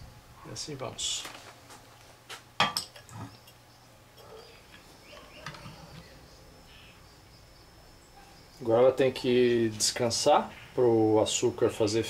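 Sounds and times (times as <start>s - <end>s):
faint handling noise: 1.1s - 2.5s.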